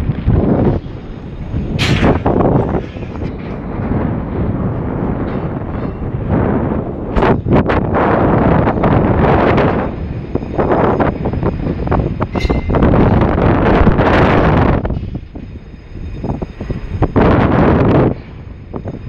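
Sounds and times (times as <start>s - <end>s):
wind buffeting microphone: 0.0s - 19.0s
brief metallic ring: 12.3s - 12.8s.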